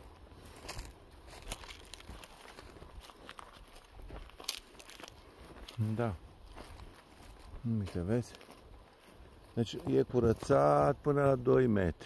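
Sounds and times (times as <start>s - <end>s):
footsteps on dry grass: 0.0s - 12.0s.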